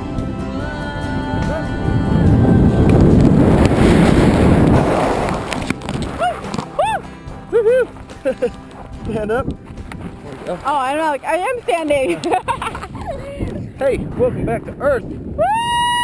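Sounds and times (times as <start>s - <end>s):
rush of wind: 0.0s - 7.1s, 7.9s - 16.0s
background music: 0.0s - 12.9s
sliding along ground: 1.9s - 13.7s
vocal cries: 6.1s - 8.5s.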